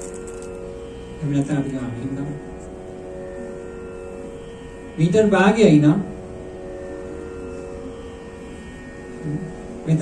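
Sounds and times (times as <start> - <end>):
steady musical drone: 0.0 - 10.0.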